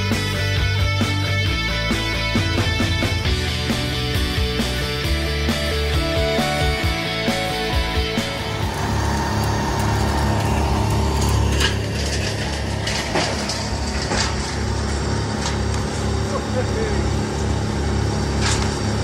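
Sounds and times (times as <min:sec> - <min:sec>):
large engine idling: 0:00.0 - 0:19.0.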